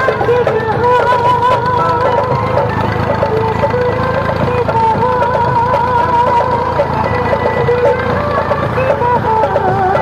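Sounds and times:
song with wavering melody: 0:00.0 - 0:10.0
tractor engine running: 0:00.0 - 0:10.0.

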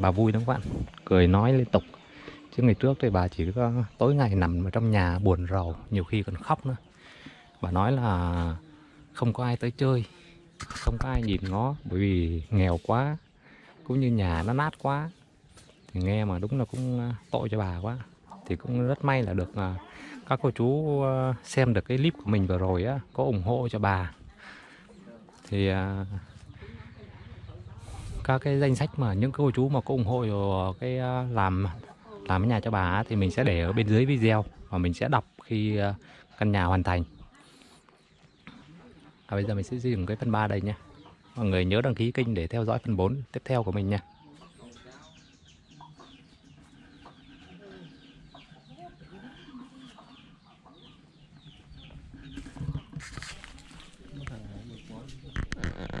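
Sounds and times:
chickens chirping: 0:00.0 - 0:56.0
rustling: 0:52.4 - 0:56.0.

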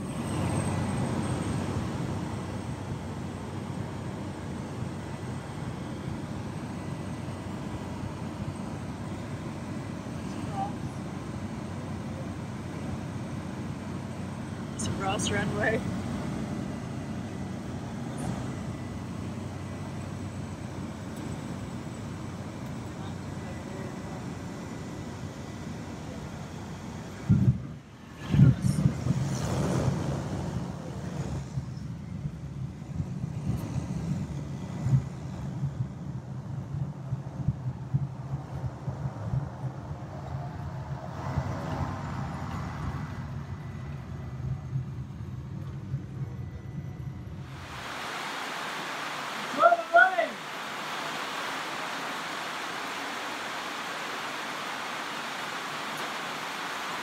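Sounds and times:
aircraft engine droning: 0:00.0 - 0:57.0.

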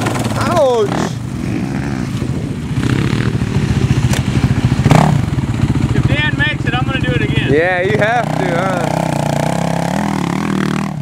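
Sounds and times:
quad engine chugging: 0:00.0 - 0:11.0.

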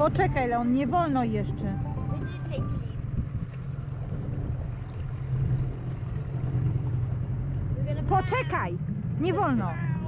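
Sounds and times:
wind noise on microphone: 0:00.0 - 0:06.8
outboard motor droning: 0:00.0 - 0:10.0.

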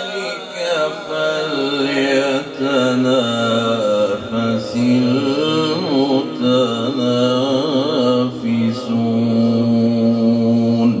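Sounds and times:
man reciting melodically into microphone: 0:00.0 - 0:11.0.

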